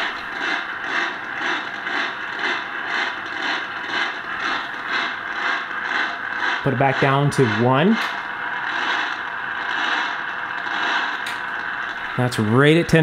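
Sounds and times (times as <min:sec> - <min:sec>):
pulsing radio static: 0:00.0 - 0:13.0.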